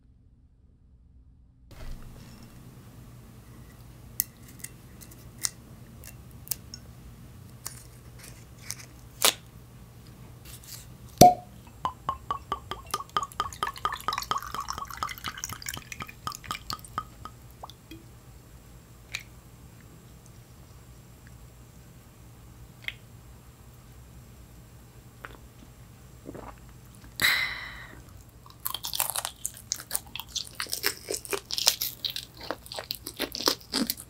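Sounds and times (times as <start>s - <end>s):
liquid glugging from bottle: 11.2s - 17.9s
cork stopper popping: 11.2s - 18.0s.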